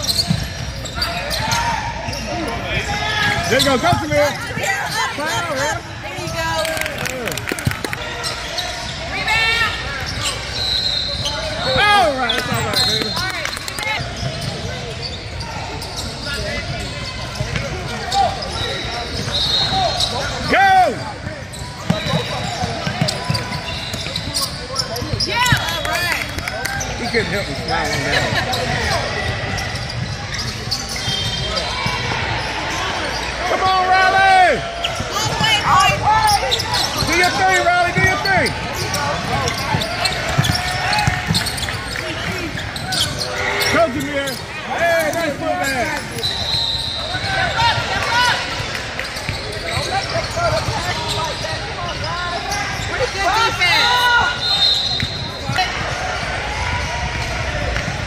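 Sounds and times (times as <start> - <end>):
basketball bouncing on court: 0.0 - 1.5, 3.2 - 5.0, 16.6 - 18.1, 21.2 - 25.8, 34.8 - 43.2
shouts and chatter: 0.0 - 58.0.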